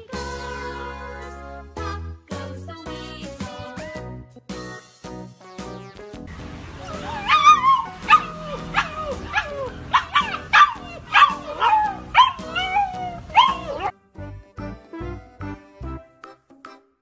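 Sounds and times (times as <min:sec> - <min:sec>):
background music: 0:00.0 - 0:17.0
puppy yelping: 0:06.8 - 0:13.9.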